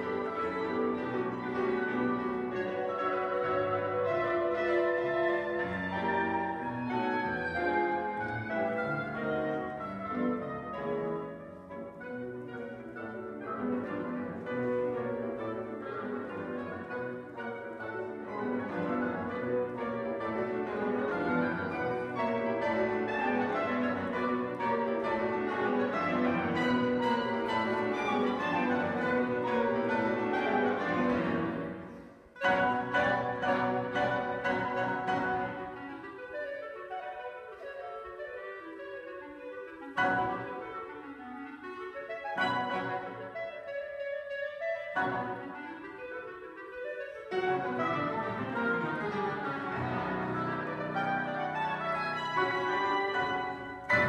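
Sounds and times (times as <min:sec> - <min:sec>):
bassoon: 0:00.0 - 0:54.0
clarinet: 0:00.0 - 0:54.0
oboe: 0:00.0 - 0:54.0
piano: 0:00.0 - 0:54.0.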